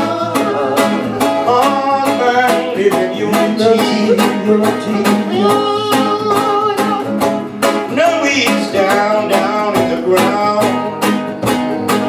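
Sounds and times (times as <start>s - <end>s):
guitars strumming: 0.0s - 12.0s
person singing: 0.0s - 12.0s.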